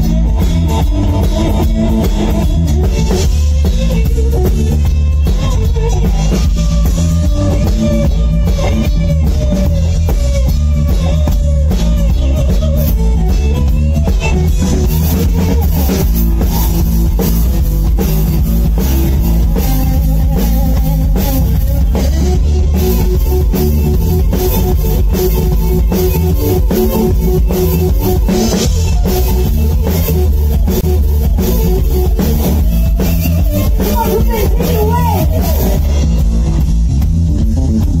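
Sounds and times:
drum kit with cymbals: 0.0s - 38.0s
electric bass: 0.0s - 38.0s
electric guitar held notes: 0.0s - 38.0s.

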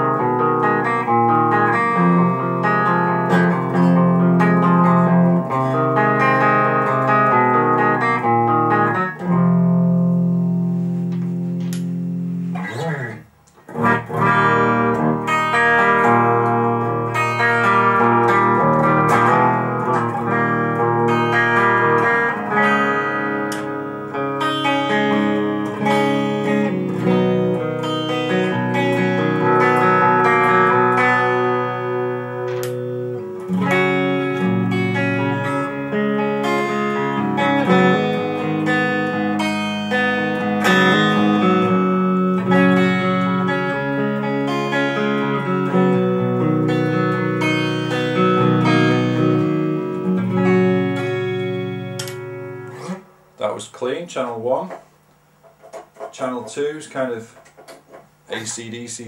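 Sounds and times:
electric guitar chords and notes: 0.0s - 58.7s.

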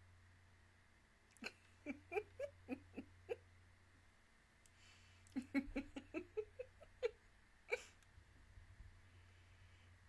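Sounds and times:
woman giggling softly: 1.4s - 3.4s, 5.2s - 8.0s
quiet breath in: 4.6s - 5.4s, 9.0s - 10.0s.

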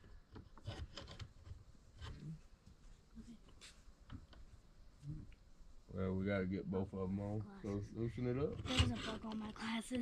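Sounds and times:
faint hardware clicks and rubs: 0.0s - 4.6s.

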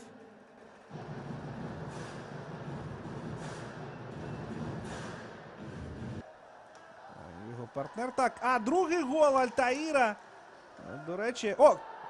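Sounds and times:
arena noise: 0.0s - 12.0s.

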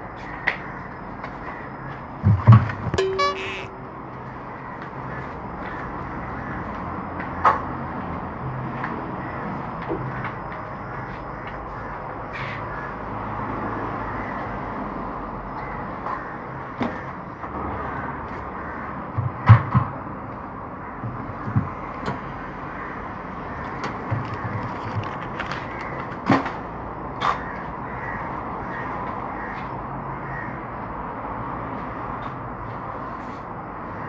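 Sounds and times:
steady background noise: 0.0s - 34.0s.

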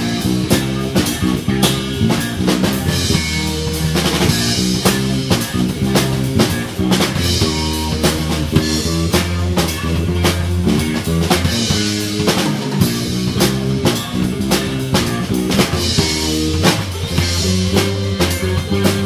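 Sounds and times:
drum kit beat: 0.0s - 19.0s
electric bass: 0.0s - 19.0s
electric guitar: 0.0s - 19.0s.

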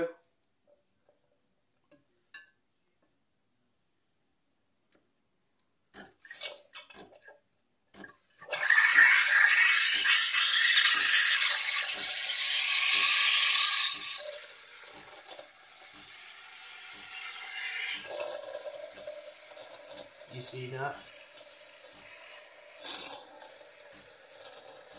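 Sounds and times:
steam wand frothing milk: 8.4s - 24.9s
steam sputters: 8.5s - 24.9s.

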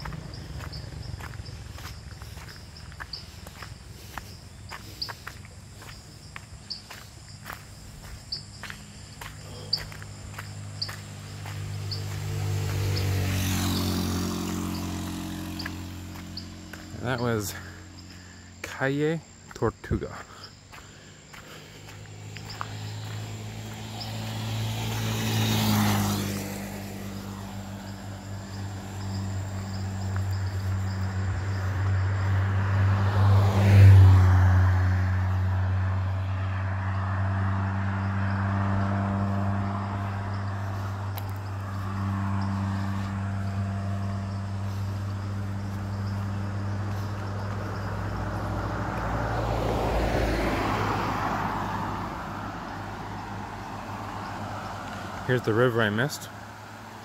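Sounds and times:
cars passing on road: 0.0s - 57.0s
pickup truck approaching: 0.0s - 57.0s.

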